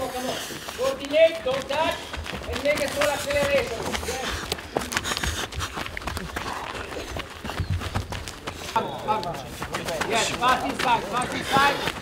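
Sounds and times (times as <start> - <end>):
footsteps running on grass: 0.0 - 12.0.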